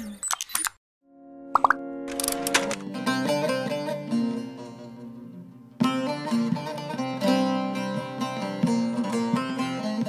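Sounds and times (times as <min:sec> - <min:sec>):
plucked notes: 0:01.5 - 0:10.0
small clicks: 0:02.1 - 0:02.8.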